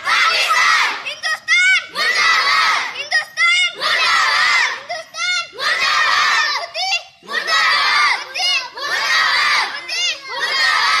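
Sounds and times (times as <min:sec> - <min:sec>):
children shouting together: 0:00.0 - 0:11.0.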